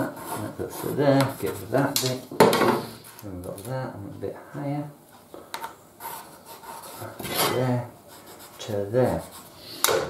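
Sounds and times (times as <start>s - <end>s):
pencil scratching on board: 0.0s - 1.9s, 6.0s - 10.0s.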